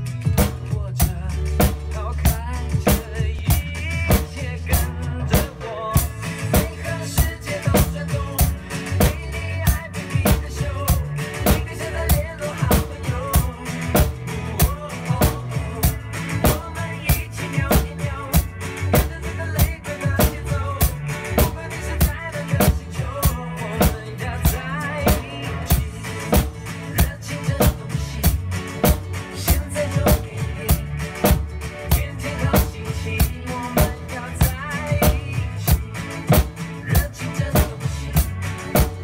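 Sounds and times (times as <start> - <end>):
acoustic drum kit playing: 0.0 - 39.0
recorded backing music: 0.0 - 39.0.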